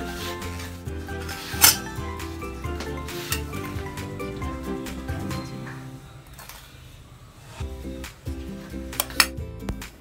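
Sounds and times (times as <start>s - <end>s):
background music: 0.0s - 10.0s
utensils clinking on cookware: 1.2s - 2.1s, 2.7s - 3.8s.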